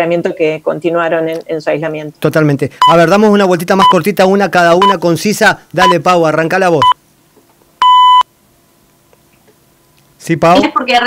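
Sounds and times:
high-pitched electronic beep: 7.8 - 8.2.

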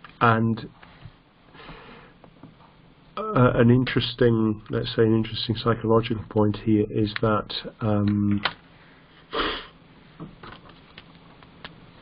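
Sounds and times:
low background hiss: 0.0 - 12.0
faint intake of breath: 0.8 - 2.2, 8.7 - 10.2.

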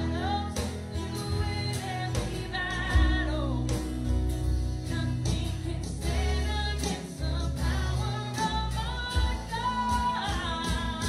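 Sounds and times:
woman singing lead: 0.0 - 11.0
worship band playing: 0.0 - 11.0.

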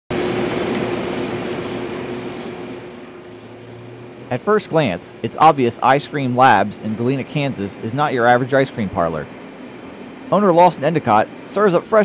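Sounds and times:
steady low hum: 0.1 - 12.0
liquid nitrogen hissing: 3.6 - 9.2.

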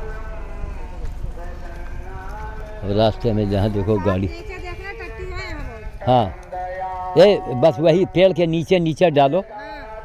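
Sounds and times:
man speaking: 2.8 - 4.3, 7.1 - 9.5.

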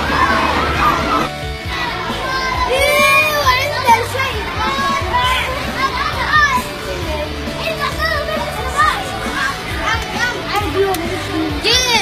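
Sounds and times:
background music with low tones: 0.0 - 12.0
children chattering and calling out: 0.0 - 12.0.

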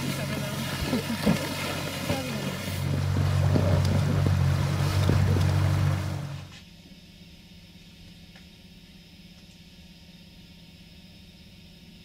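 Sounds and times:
water rushing past: 0.0 - 6.5
outboard motor running: 0.0 - 6.6
faint steady hum: 0.0 - 12.0.

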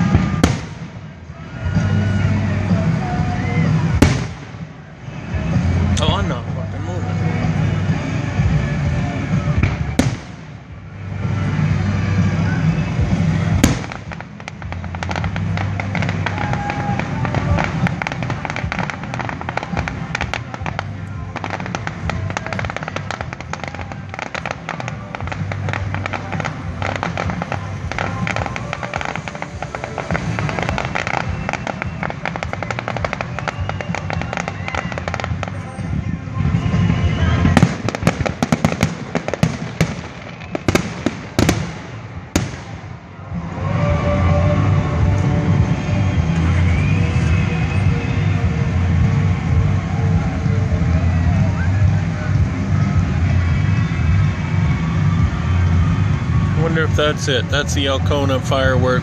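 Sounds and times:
fireworks loud bangs: 0.0 - 6.2, 7.2 - 59.0
fireworks bursts and crackling: 0.0 - 59.0.

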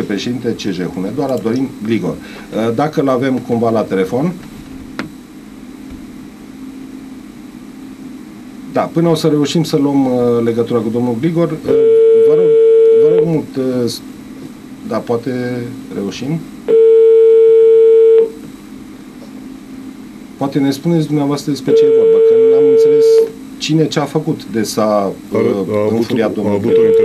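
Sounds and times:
steady low hum: 0.0 - 27.0
telephone ringing tone: 11.7 - 13.2, 16.7 - 18.4, 21.7 - 23.2, 26.7 - 27.0.

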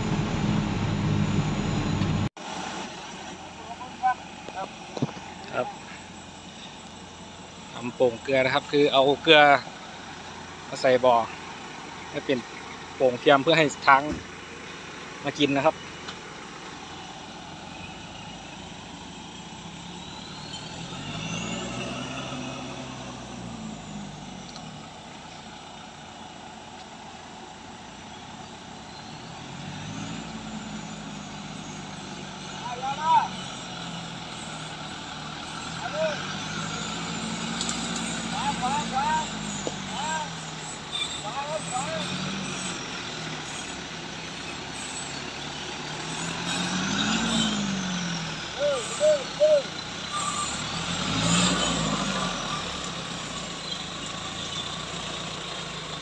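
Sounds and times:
truck engine revving: 0.0 - 56.0.

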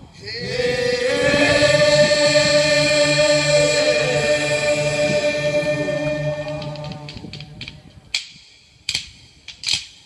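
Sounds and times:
group chanting a long note: 0.2 - 7.6
low pulsing drone: 0.4 - 7.9.

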